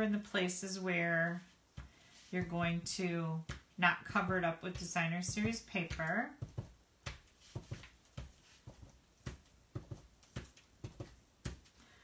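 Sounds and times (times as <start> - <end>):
stamp tapping on paper: 4.2 - 11.6.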